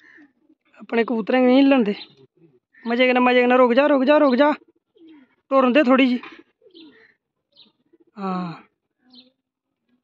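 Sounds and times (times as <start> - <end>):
pigeons cooing: 4.5 - 5.5, 6.2 - 9.4.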